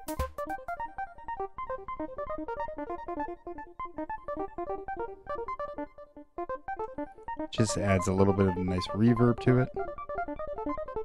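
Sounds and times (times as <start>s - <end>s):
plucky synthesizer notes with reverb: 0.0s - 11.0s.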